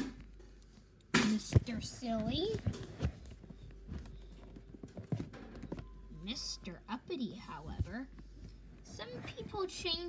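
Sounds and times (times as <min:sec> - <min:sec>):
handling taps and knocks: 0:00.0 - 0:06.2.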